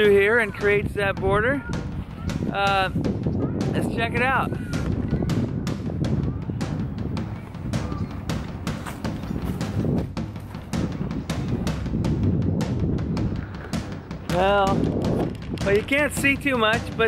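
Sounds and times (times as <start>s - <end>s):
wind rumble on microphone: 0.0s - 17.0s
footsteps crunching on leaf litter: 8.3s - 10.6s.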